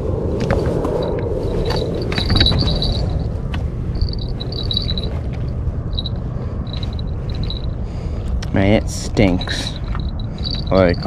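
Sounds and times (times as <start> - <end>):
steady low rumble: 0.0 - 11.0
small bell jingling: 1.0 - 7.8, 9.0 - 11.0.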